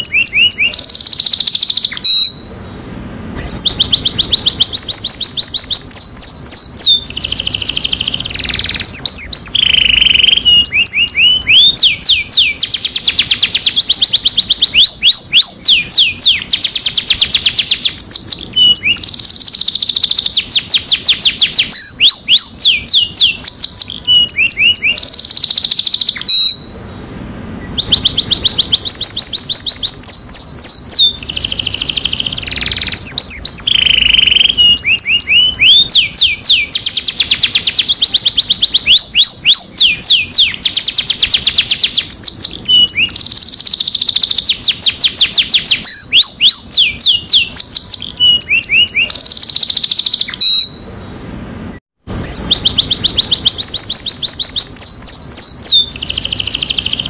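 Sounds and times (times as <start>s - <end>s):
canary singing trills: 0.0s - 57.0s.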